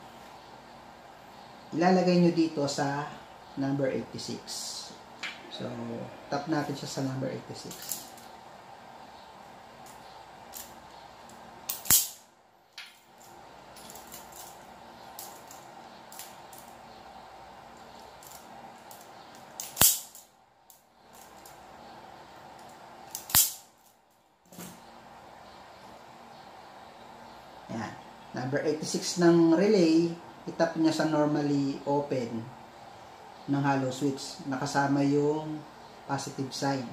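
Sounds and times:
faint steady hum: 0:00.0 - 0:36.9
wire stripper snapping shut: 0:11.7 - 0:12.2, 0:19.6 - 0:20.2, 0:23.1 - 0:23.6.

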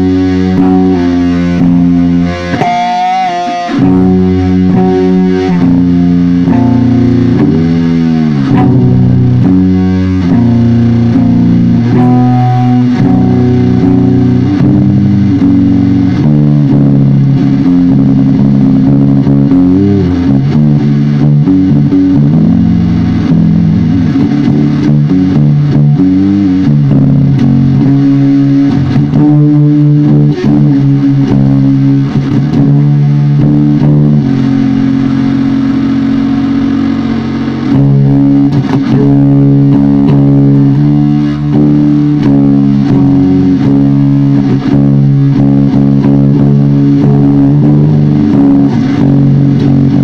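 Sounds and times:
distorted electric guitar chords: 0:00.0 - 0:50.0.

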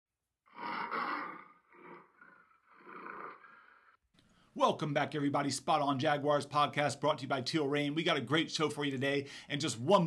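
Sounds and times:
big cat roaring: 0:00.5 - 0:04.0.

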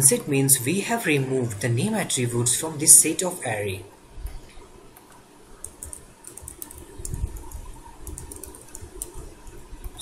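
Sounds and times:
computer keyboard key clicks: 0:05.6 - 0:09.2.

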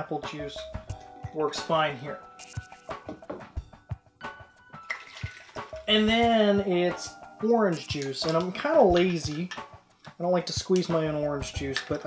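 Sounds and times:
juice pouring into metal shaker: 0:04.8 - 0:06.0, 0:07.0 - 0:09.6.

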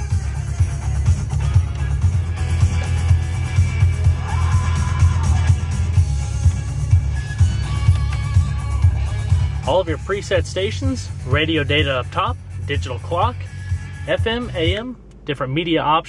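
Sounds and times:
radio music with punchy bass beat: 0:00.0 - 0:16.0.

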